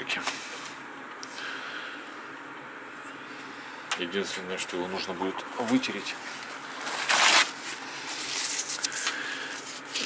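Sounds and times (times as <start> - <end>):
tissue rustling against plastic: 5.6 - 10.0.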